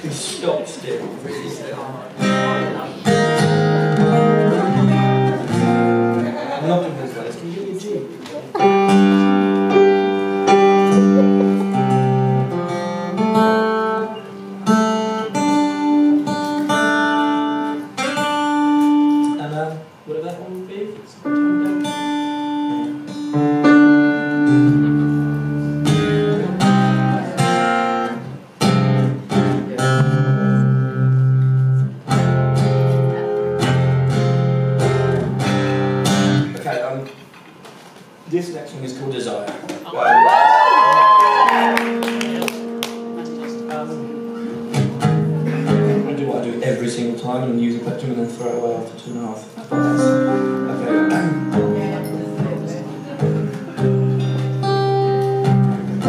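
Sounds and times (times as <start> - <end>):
acoustic guitar strummed and picked: 2.1 - 6.5, 8.5 - 20.0, 21.2 - 36.6, 41.7 - 56.0.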